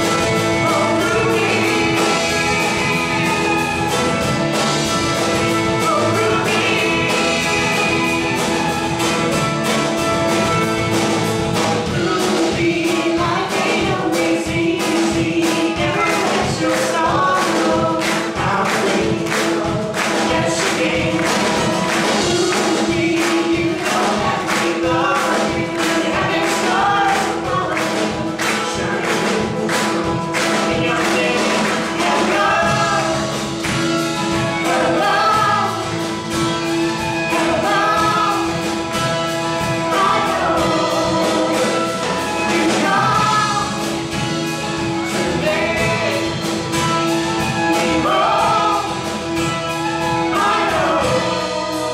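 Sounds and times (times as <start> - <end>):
person singing: 0.0 - 9.1, 11.8 - 33.5, 37.2 - 49.4
acoustic guitar: 0.0 - 51.9
steady drum beat: 0.0 - 51.9.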